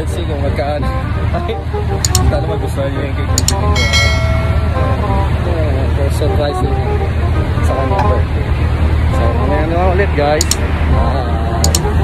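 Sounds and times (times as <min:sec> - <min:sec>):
road traffic rumble: 0:00.0 - 0:12.0
held pitched tone: 0:03.4 - 0:07.1
person talking: 0:07.7 - 0:08.3.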